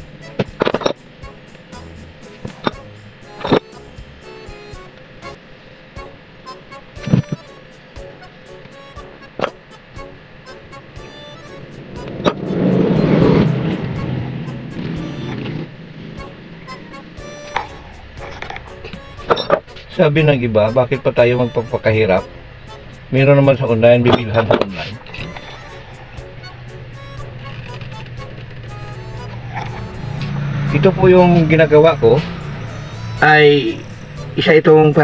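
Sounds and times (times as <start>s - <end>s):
background music: 0.0s - 35.0s
loud noise: 10.8s - 35.0s.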